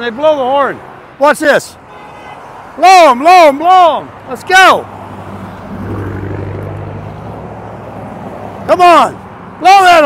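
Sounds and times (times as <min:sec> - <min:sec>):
vehicle engine drone: 0:05.1 - 0:08.8.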